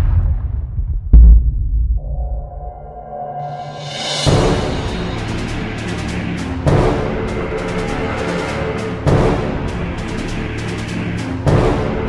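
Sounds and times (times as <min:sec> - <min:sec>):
deep booming hit: 0:00.0 - 0:02.7
low drone with held tones: 0:02.0 - 0:11.3.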